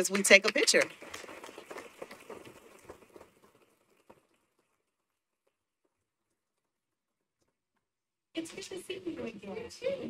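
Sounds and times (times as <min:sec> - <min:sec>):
crowd clapping: 0:00.0 - 0:04.9.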